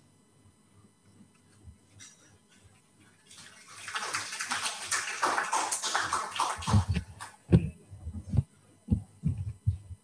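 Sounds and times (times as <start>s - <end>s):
audience applauding: 3.3s - 7.4s.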